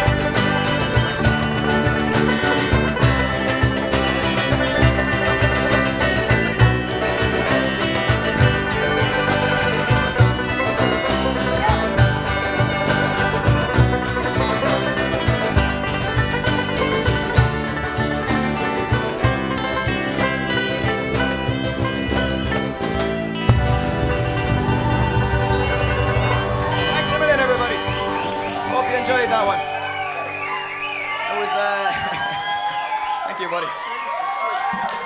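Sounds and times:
plucked strings: 0:00.0 - 0:30.6
strummed acoustic guitars: 0:00.0 - 0:31.2
accordion: 0:00.0 - 0:31.5.

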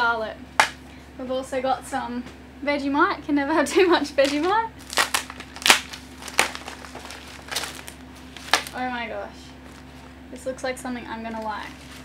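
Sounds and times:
paper packaging tearing and rustling: 0:04.2 - 0:08.8, 0:11.4 - 0:12.0.

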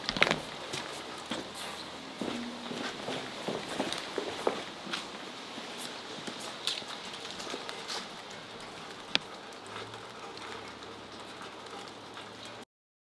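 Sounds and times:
footsteps on wet concrete: 0:00.0 - 0:12.4
steady rain falling: 0:00.0 - 0:12.7.

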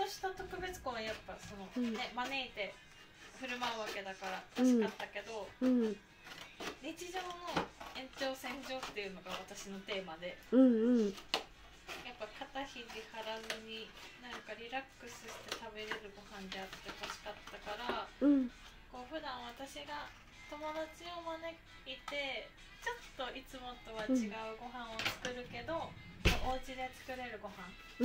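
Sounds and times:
woman speaking: 0:00.0 - 0:02.7, 0:03.4 - 0:06.0, 0:06.8 - 0:11.2, 0:17.6 - 0:27.8
background music: 0:00.0 - 0:28.0.

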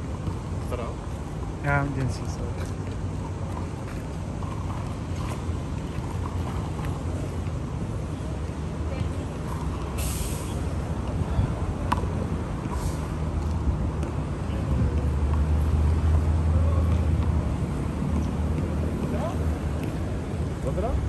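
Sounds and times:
road traffic rumble: 0:00.0 - 0:21.0
heavy vehicle engine: 0:05.0 - 0:21.0.

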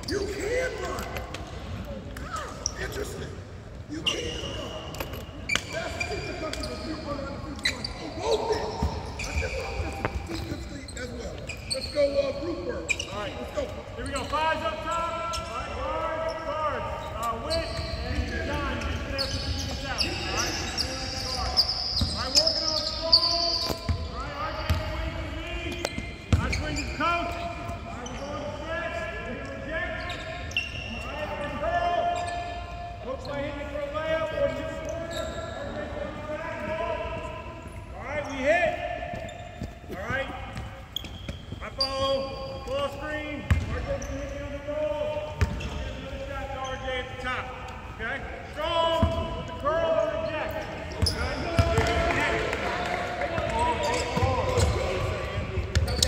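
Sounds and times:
people talking and calling out: 0:00.0 - 0:56.0.

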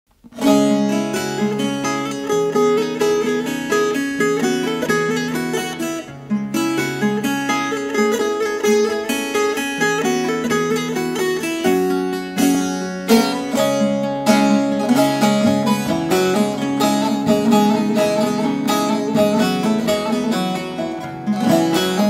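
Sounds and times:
plucked long-necked lute melody: 0:00.2 - 0:22.0.

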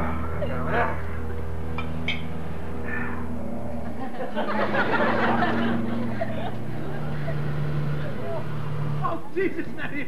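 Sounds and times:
light aircraft engine droning: 0:00.0 - 0:10.0.

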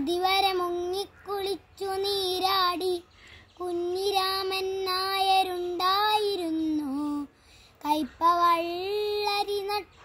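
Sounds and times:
boy singing unaccompanied: 0:00.0 - 0:10.0.

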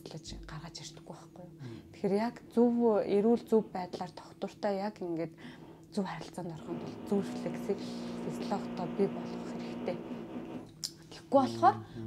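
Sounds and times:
person speaking softly: 0:11.4 - 0:12.0.

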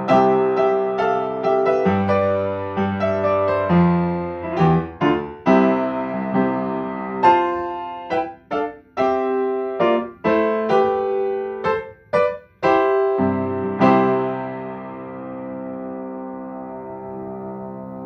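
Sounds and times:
upright piano playing chords: 0:00.0 - 0:18.0.

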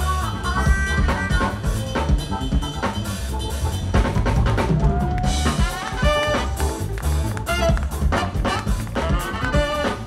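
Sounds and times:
live funk band playing: 0:00.0 - 0:10.0.

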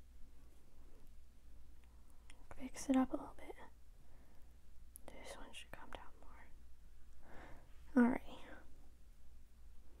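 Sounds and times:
person whispering: 0:02.4 - 0:03.8, 0:05.0 - 0:06.6, 0:07.9 - 0:08.7.

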